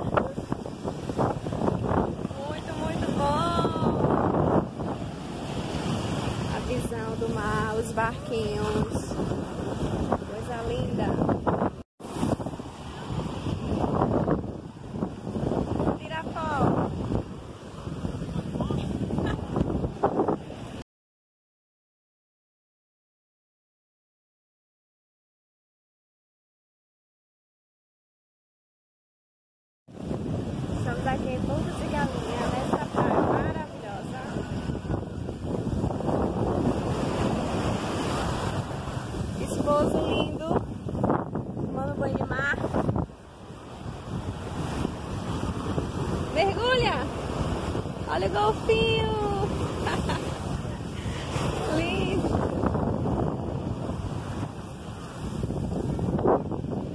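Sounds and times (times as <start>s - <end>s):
sea waves washing: 0.0s - 20.8s, 29.9s - 56.9s
strong wind buffeting microphone: 0.0s - 20.8s, 29.9s - 56.9s.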